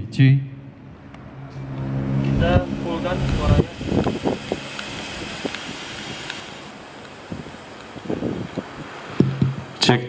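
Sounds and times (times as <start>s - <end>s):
outdoor background noise: 0.0s - 10.0s
wind buffeting microphone: 1.9s - 9.8s.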